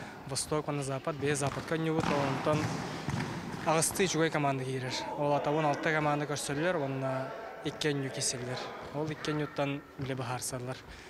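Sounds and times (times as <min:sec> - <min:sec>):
ball thudding: 0:01.4 - 0:04.1
man speaking: 0:03.7 - 0:10.9.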